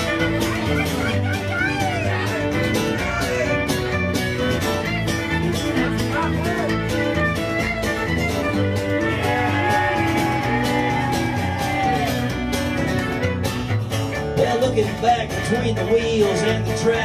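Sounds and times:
live country band playing: 0:00.0 - 0:17.0
sliding lead melody: 0:00.0 - 0:17.0
upright bass: 0:00.0 - 0:17.0.

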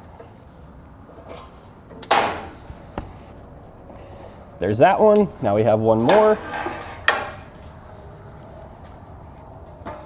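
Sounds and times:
exhaust hanger clunk: 0:01.3 - 0:03.2.

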